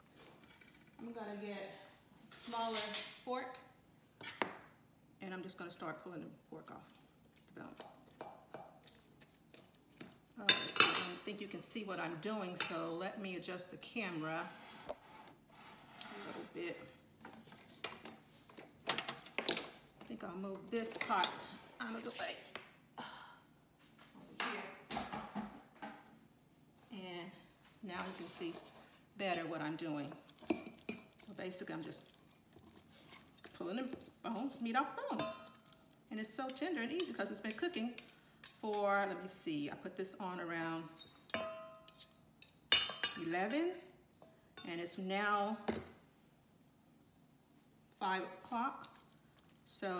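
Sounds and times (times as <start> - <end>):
kitchenware clattering on a counter: 24.4 - 26.1, 41.0 - 44.4
metal bowl ringing: 41.4 - 41.9.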